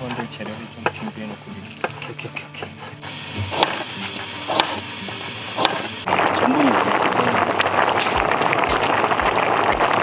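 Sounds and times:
broth boiling and bubbling: 0:03.0 - 0:10.0.

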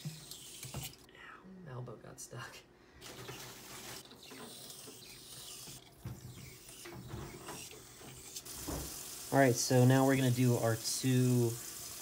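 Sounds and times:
syringe plunger rubbing in barrel: 0:00.0 - 0:01.0, 0:03.1 - 0:08.5.

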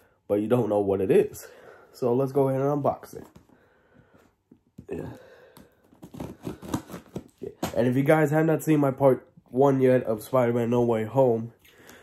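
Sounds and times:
scissors cutting packing tape: 0:05.9 - 0:07.8.

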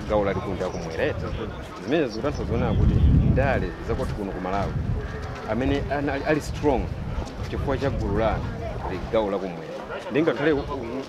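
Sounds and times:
man talking: 0:00.0 - 0:04.8, 0:05.5 - 0:11.0.

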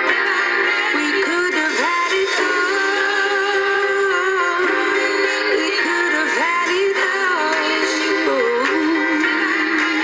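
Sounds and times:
woman singing pop song: 0:00.0 - 0:10.0.

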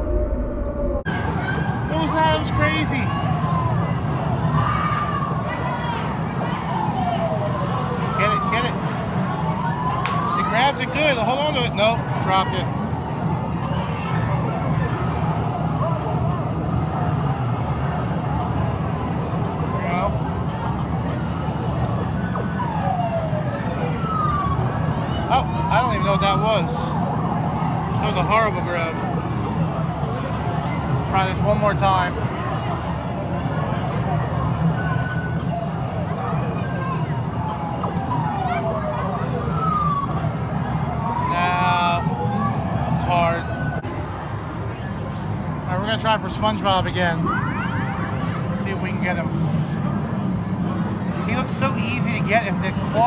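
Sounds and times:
falling electronic tones: 0:00.0 - 0:01.1
background chatter: 0:01.1 - 0:53.0.

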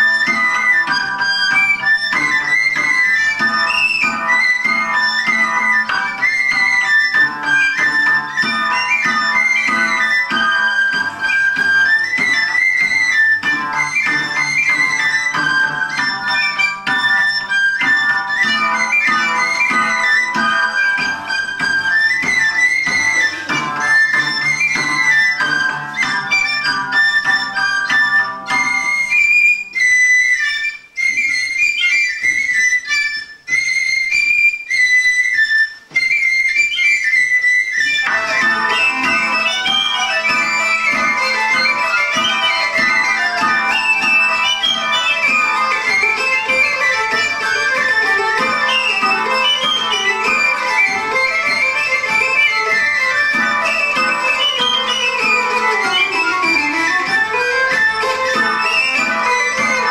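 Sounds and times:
hurdy-gurdy drone: 0:00.0 - 0:29.2, 0:37.8 - 0:59.9
pipe melody: 0:00.0 - 0:59.9.

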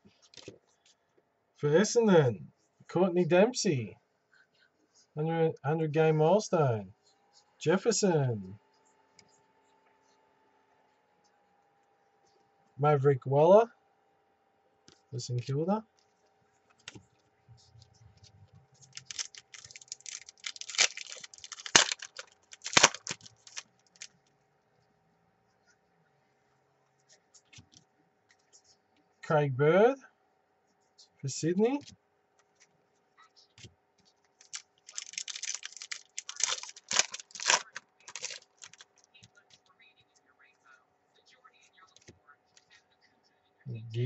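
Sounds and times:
foil wrapper crinkling: 0:18.8 - 0:24.1, 0:34.4 - 0:39.0
trading cards flicked by hand: 0:18.9 - 0:24.0.

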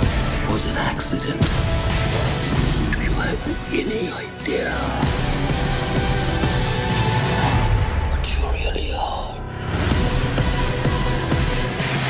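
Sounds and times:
trailer music: 0:00.0 - 0:12.0
whispered breathy voice: 0:08.1 - 0:09.5.

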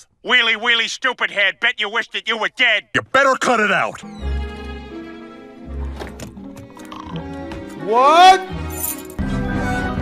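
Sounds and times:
background music: 0:03.3 - 0:10.0.

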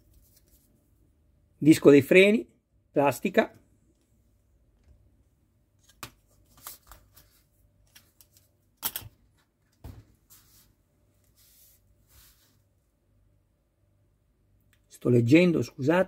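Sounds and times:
soft rustling: 0:10.1 - 0:12.7.

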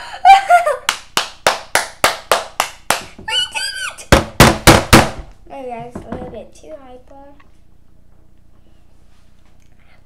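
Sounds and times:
rapid hand clapping: 0:00.9 - 0:03.2
boy squealing: 0:03.3 - 0:04.1.

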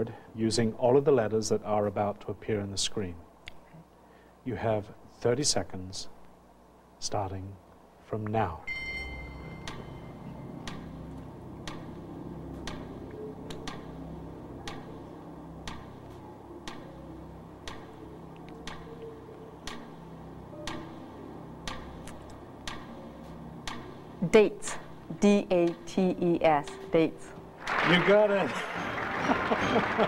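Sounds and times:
countdown timer ticking: 0:08.6 - 0:28.2
low droning suspense music: 0:08.7 - 0:27.6.

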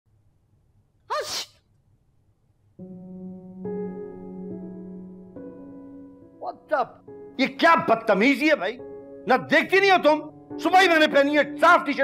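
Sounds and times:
person sneezing: 0:01.1 - 0:01.6.

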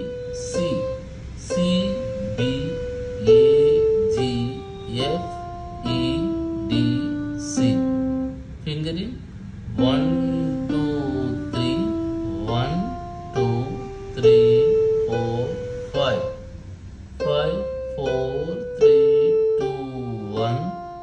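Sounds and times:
electronic keyboard playing scale: 0:00.0 - 0:21.0.

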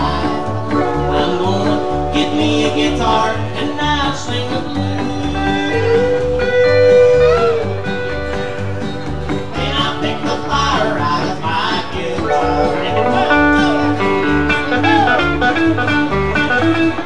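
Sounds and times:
steel guitar sliding notes: 0:00.0 - 0:17.0
strummed guitars: 0:00.0 - 0:17.0
upright bass pulsing: 0:00.0 - 0:17.0.

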